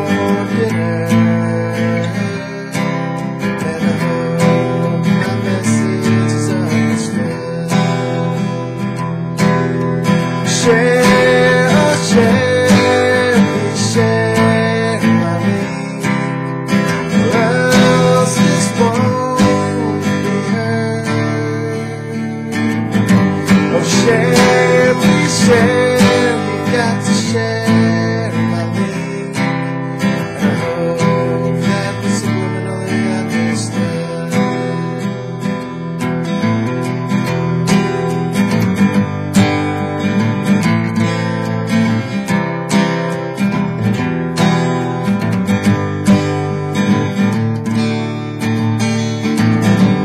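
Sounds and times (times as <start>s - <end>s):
man singing: 0.0s - 36.7s, 49.3s - 50.0s
acoustic guitar strumming: 0.0s - 50.0s.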